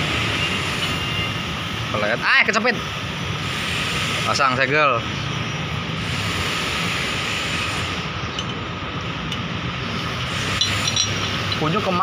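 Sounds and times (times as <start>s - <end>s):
machinery droning: 0.0s - 12.0s
metallic clicks of chain: 10.5s - 11.8s.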